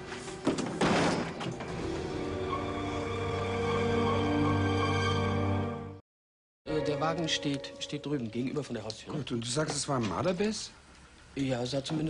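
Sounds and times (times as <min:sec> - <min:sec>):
wheeled bin scraping and knocking: 0:00.0 - 0:02.3
background music with held notes: 0:01.4 - 0:06.0, 0:06.7 - 0:08.6.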